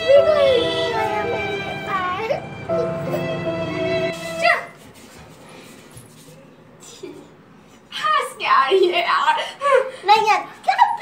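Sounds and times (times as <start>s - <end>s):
background music: 0.0s - 4.7s.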